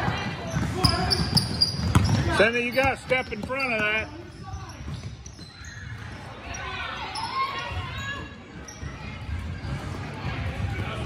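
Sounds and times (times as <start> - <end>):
basketball bouncing: 0.0 - 4.2
players moving on hardwood court: 0.0 - 6.6.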